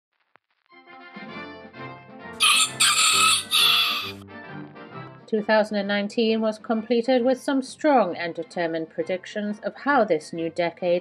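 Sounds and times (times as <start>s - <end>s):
background music: 0.8s - 11.0s
rooster crowing: 2.4s - 4.2s.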